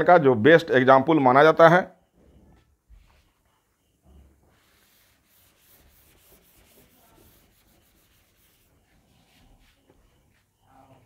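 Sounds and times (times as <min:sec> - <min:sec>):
eraser wiping a whiteboard: 0:02.9 - 0:10.6.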